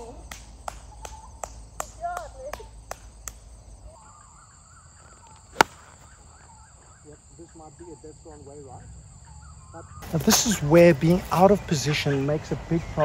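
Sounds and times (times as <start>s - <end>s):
faint bird calls: 3.8s - 10.2s
golf club striking ball: 5.5s - 6.1s.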